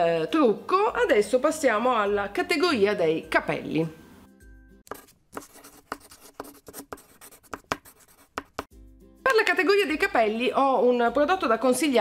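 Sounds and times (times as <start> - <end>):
faint background music: 0.0 - 7.2, 7.9 - 12.0
chalk scratching on chalkboard: 4.9 - 8.7.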